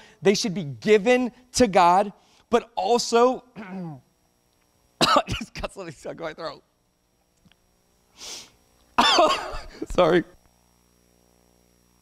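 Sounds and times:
man coughing loudly: 3.6s - 4.0s, 5.0s - 5.8s, 9.0s - 10.0s
man inhaling sharply: 8.1s - 8.6s.

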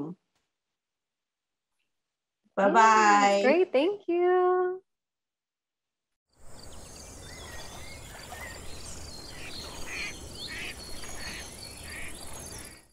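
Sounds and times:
insects chirping: 6.3s - 12.9s
bird calls: 6.4s - 12.9s.

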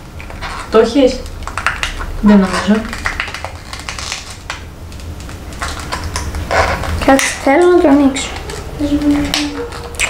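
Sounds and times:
fingernails crinkling plastic wrapping: 1.4s - 10.0s.

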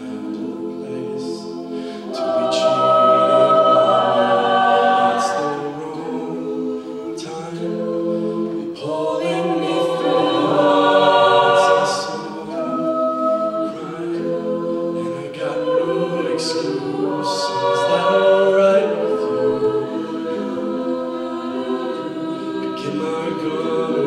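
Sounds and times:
backing vocal chords: 0.0s - 24.0s.

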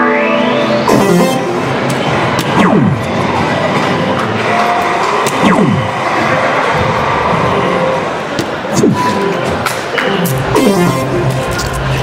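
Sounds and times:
hall background noise: 0.0s - 12.0s
descending electronic hit tone: 0.2s - 4.1s, 5.3s - 6.9s.

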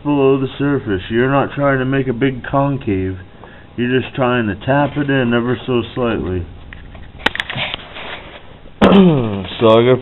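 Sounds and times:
man clearing his throat: 8.8s - 9.5s.

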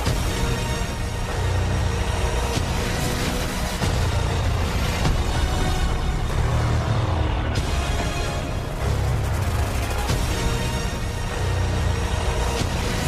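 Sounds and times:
dramatic film score drone: 0.0s - 13.0s.

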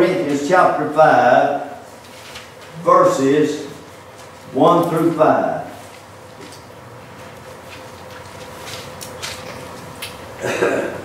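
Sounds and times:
pages turning: 2.0s - 2.8s, 7.6s - 9.9s.

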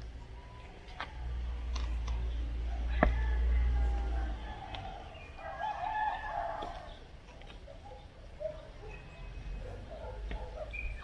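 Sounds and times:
rooster crowing: 2.7s - 6.9s.

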